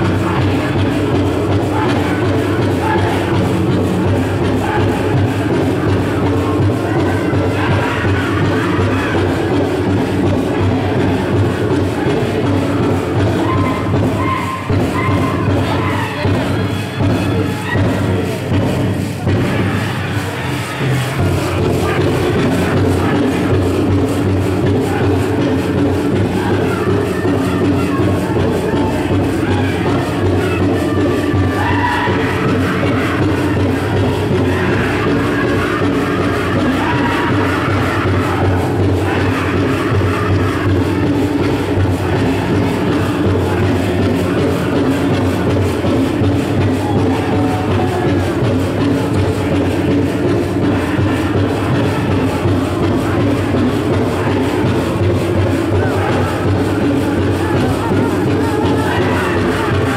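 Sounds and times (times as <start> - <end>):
crowd in arena: 0.0 - 59.9
drum group singing: 0.0 - 59.9
steady drumbeat: 0.0 - 59.9.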